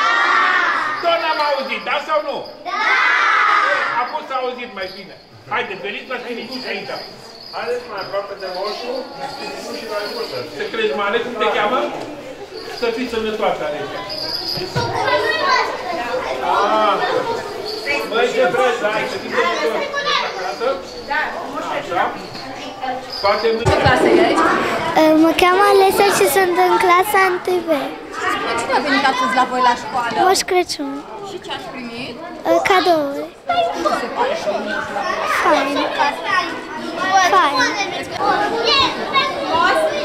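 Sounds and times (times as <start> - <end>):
children chattering: 0.0 - 40.0.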